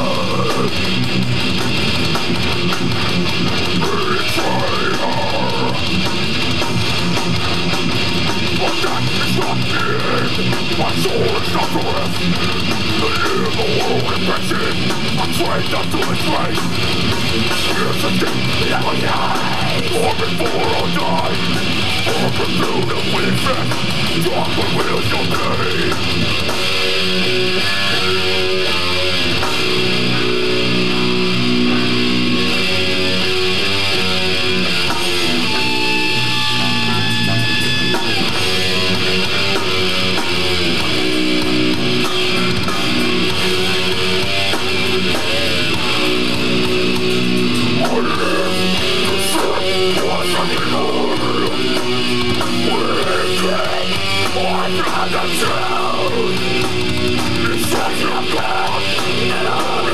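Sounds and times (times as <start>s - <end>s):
death metal band playing: 0.0s - 59.9s.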